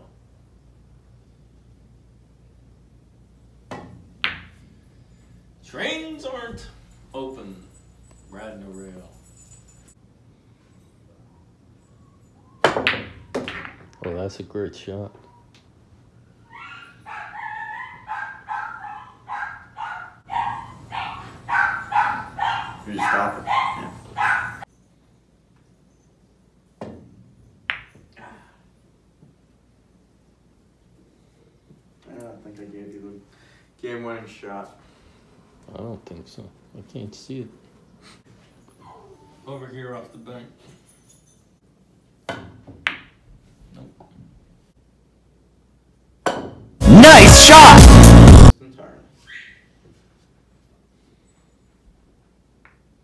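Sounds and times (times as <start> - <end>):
pool balls clacking: 12.6 - 14.2
small dog yipping: 16.4 - 24.6, 38.8 - 39.5, 49.2 - 49.7.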